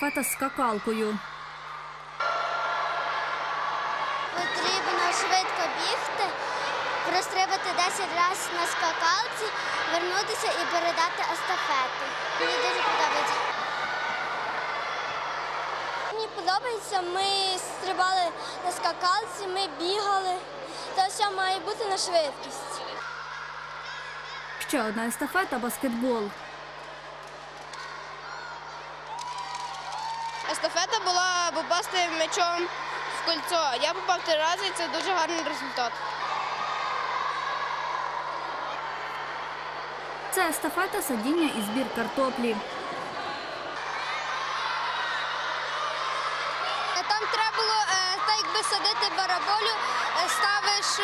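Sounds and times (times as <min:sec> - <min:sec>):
children's high calls: 0:00.0 - 0:00.7
children chattering and shouting: 0:00.0 - 0:01.2, 0:04.3 - 0:13.8, 0:45.8 - 0:51.0
hubbub of children's voices: 0:00.0 - 0:01.3, 0:04.2 - 0:26.4, 0:30.5 - 0:51.0.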